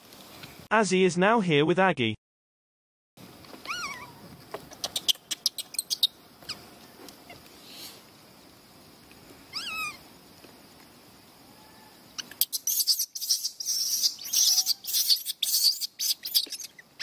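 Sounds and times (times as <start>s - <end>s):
baby monkey coo calls: 3.6s - 7.4s, 9.5s - 10.0s, 11.4s - 17.0s.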